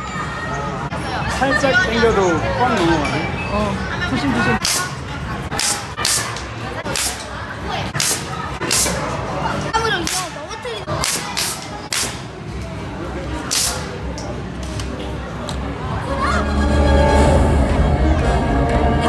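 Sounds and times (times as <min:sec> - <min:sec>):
toy cork gun popping: 0:11.0 - 0:12.2.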